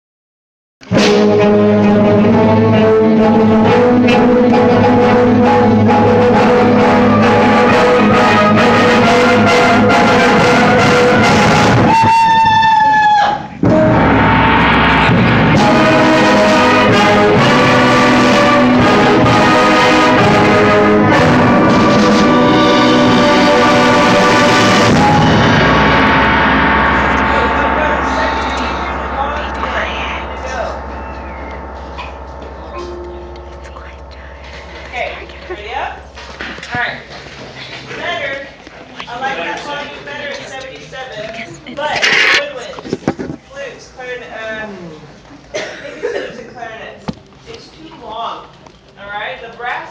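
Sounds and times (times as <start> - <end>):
concert band playing loud chords: 0.8 - 12.4, 13.4 - 37.9
single held note: 25.7 - 37.1.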